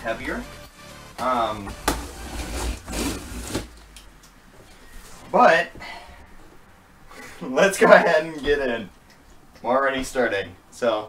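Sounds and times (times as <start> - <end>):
cardboard rubbing and scraping: 1.7 - 3.8.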